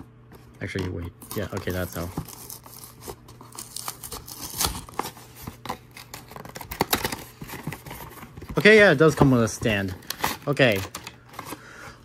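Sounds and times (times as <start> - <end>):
cardboard box tearing: 1.2 - 11.6.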